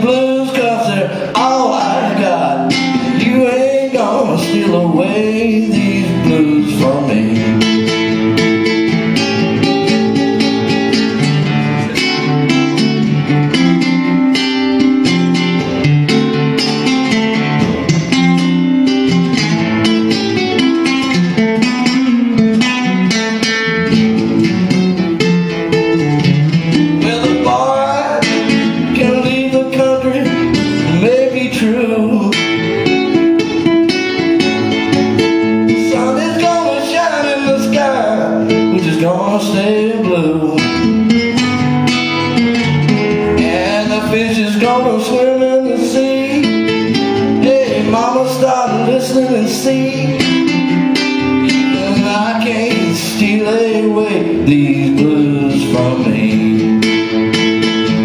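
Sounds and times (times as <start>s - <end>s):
amplified blues guitar: 0.0s - 58.0s.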